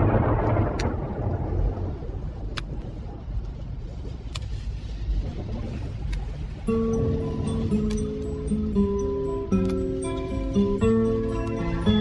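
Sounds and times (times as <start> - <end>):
vinyl surface noise and rumble: 0.0 - 12.0
sustained instrument notes: 6.6 - 12.0.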